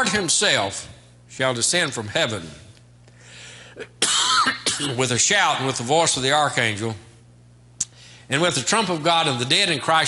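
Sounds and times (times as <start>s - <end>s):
man coughing loudly: 3.8s - 5.1s.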